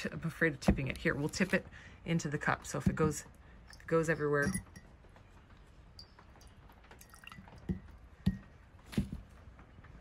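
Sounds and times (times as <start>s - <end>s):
drip and knock sounds: 6.0s - 9.4s.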